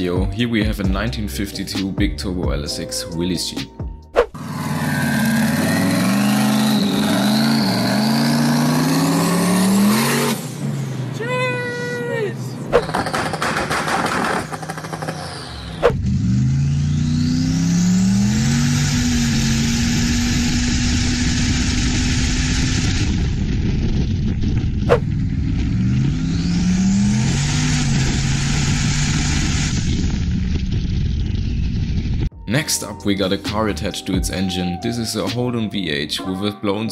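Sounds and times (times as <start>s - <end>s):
car engine accelerating: 4.3s - 11.2s, 12.6s - 32.3s
turbo whistle: 4.9s - 7.9s.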